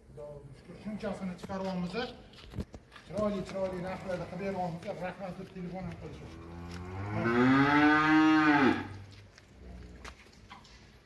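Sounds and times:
cow mooing: 0:06.4 - 0:09.0.

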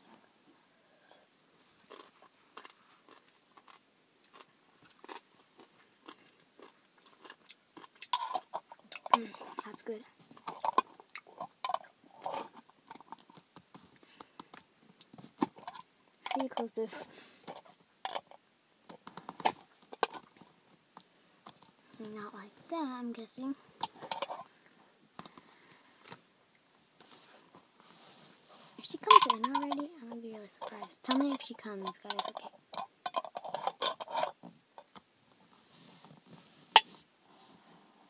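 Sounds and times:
person rustling in car: 0:27.0 - 0:28.9
handling clicks and knocks: 0:28.9 - 0:35.0.

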